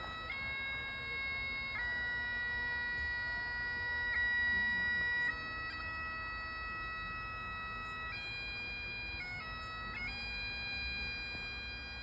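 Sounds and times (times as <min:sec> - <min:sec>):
bagpipes playing slow tune: 0:00.0 - 0:12.0.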